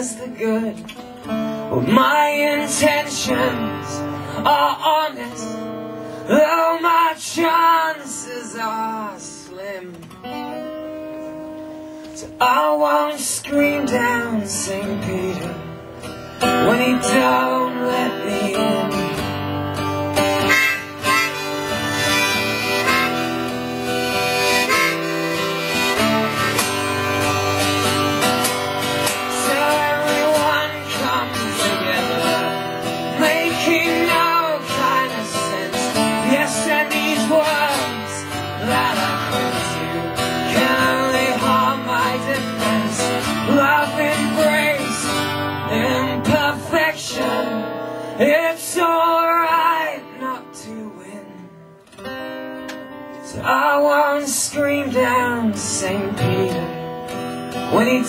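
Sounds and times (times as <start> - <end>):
strummed acoustic guitar: 0.0 - 58.0
harmonica: 19.0 - 45.8.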